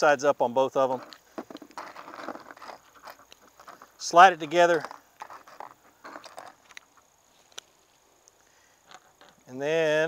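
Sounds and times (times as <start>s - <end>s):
handling noise: 0.8s - 8.2s, 8.8s - 9.6s.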